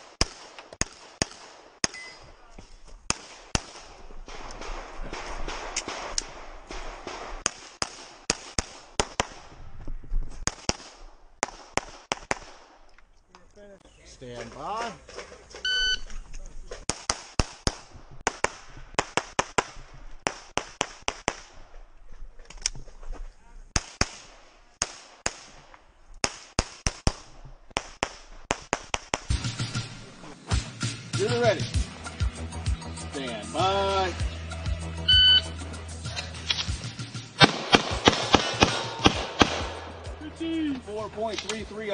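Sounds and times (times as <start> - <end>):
pistol firing: 0.0 - 2.1, 3.1 - 9.5, 10.4 - 12.8, 37.4 - 40.2
shot timer beep: 15.7 - 16.0, 35.1 - 35.5.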